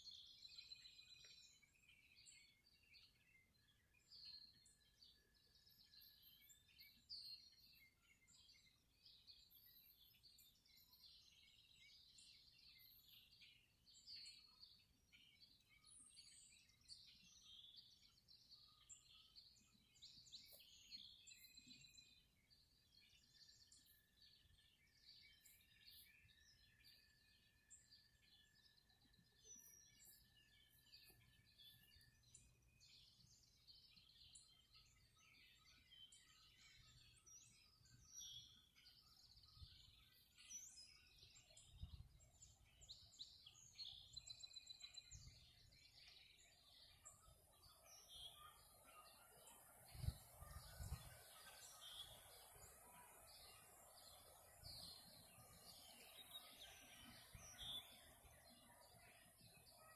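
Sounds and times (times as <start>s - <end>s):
songbirds chirping: 0.0s - 59.9s.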